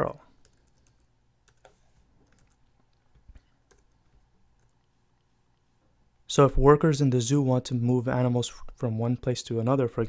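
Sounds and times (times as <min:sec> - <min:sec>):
computer keyboard keystrokes: 0:00.4 - 0:04.8.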